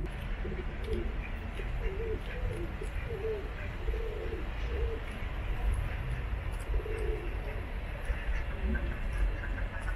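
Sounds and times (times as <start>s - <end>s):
pigeons cooing: 0.0s - 5.3s, 6.6s - 7.6s.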